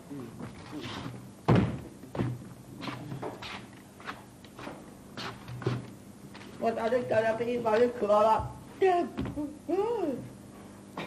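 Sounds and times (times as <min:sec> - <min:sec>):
loud thump on stage: 0:01.5 - 0:01.8.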